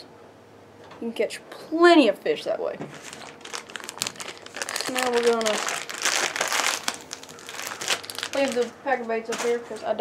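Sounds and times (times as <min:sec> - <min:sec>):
plastic bag crinkling: 0:02.9 - 0:10.0.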